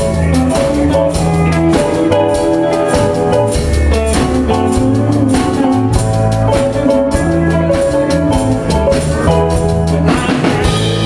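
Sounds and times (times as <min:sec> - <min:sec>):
drum kit: 0:00.0 - 0:11.0
electric guitar: 0:00.0 - 0:11.0
steady bass line: 0:00.0 - 0:11.0.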